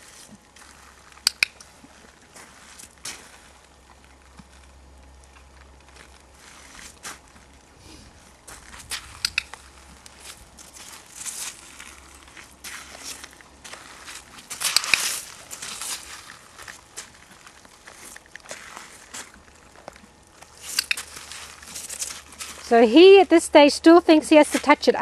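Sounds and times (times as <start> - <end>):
horse hooves on gravel: 0.0 - 25.0
sharp clicks: 1.2 - 1.7, 9.2 - 9.6.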